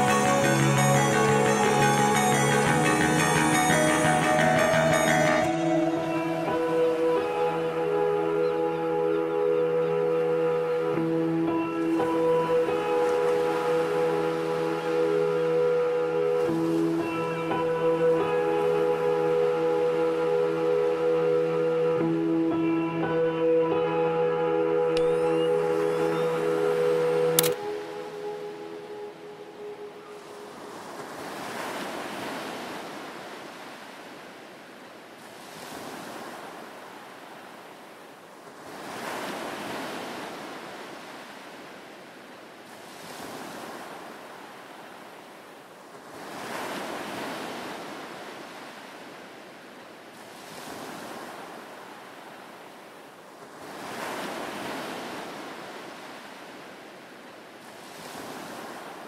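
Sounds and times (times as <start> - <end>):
music: 0.0 - 30.0
sea waves washing in: 0.0 - 59.0
sharp click: 27.4 - 27.6.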